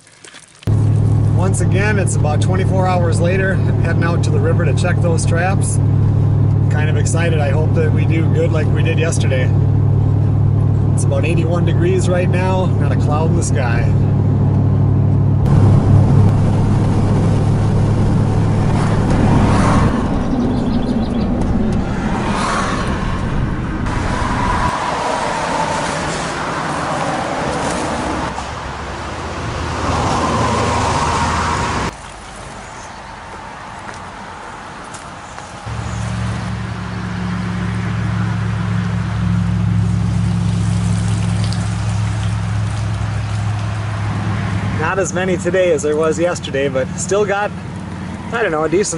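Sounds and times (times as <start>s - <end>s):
outdoor ambience: 0.0s - 48.9s
car engine and road noise: 0.6s - 48.9s
low hum: 0.7s - 27.1s, 35.7s - 44.7s.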